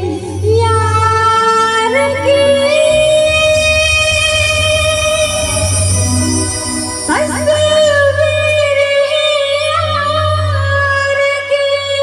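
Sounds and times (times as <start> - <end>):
woman singing into microphone: 0.0 - 6.1, 7.1 - 12.0
low bass tone: 0.0 - 10.8
amplified accompaniment: 0.0 - 11.2.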